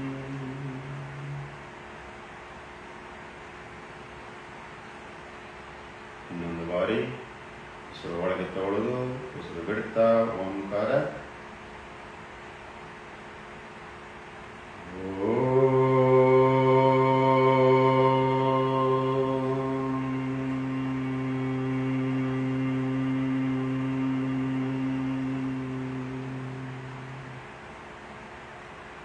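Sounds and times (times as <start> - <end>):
man chanting om: 0.0 - 1.8, 6.2 - 7.3, 7.9 - 11.4, 14.8 - 27.6.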